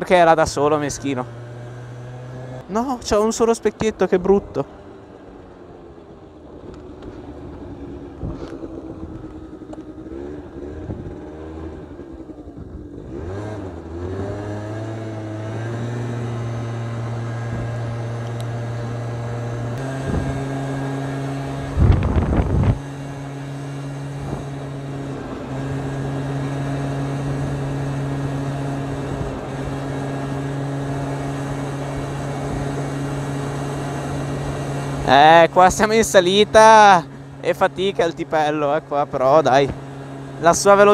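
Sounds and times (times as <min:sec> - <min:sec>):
scooter engine labouring uphill: 0:00.0 - 0:40.9.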